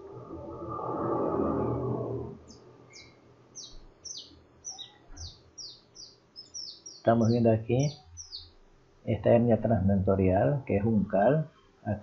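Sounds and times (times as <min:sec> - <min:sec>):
brief rushing noise: 0:00.0 - 0:02.8
small bird chirping: 0:02.5 - 0:08.7.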